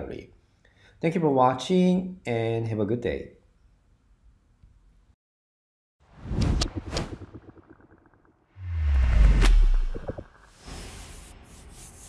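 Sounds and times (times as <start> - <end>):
deep whoosh: 8.6 - 10.6.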